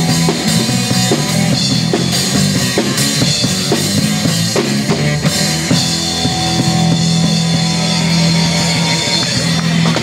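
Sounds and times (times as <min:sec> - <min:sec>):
bass guitar: 0:00.0 - 0:10.0
drum kit: 0:00.0 - 0:10.0
electric guitar: 0:00.0 - 0:10.0.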